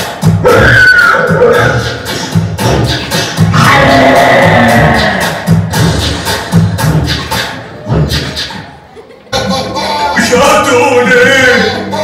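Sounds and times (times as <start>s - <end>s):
music beat: 0.0s - 12.0s.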